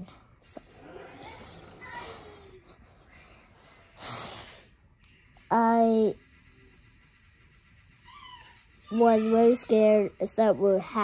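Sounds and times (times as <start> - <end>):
noisy breath close to microphone: 0.0 - 5.0.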